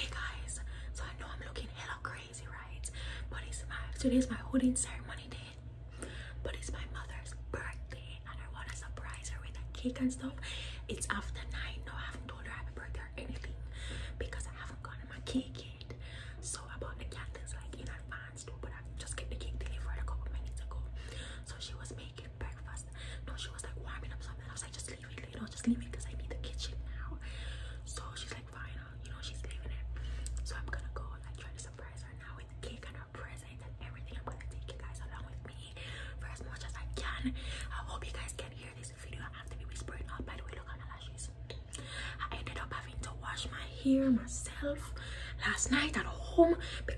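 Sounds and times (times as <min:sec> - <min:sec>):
woman whispering: 0:00.0 - 0:05.7, 0:06.4 - 0:46.9
steady low hum: 0:00.0 - 0:46.9.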